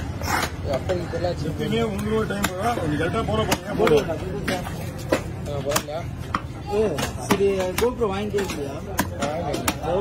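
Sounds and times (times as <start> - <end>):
knife chopping fish on wood: 3.4 - 10.0.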